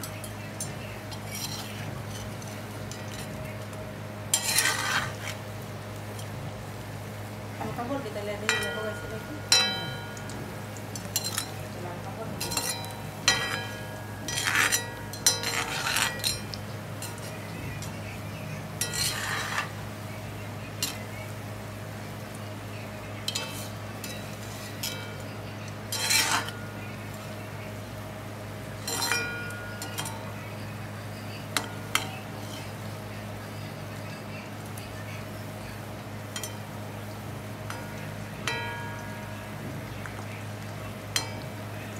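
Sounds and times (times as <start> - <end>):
oil frying hiss: 0.0 - 41.9
metal skimmer scraping a wok: 1.1 - 3.4, 4.3 - 5.4, 12.3 - 17.5, 18.8 - 19.9, 23.2 - 26.8, 28.8 - 30.4, 31.6 - 32.8.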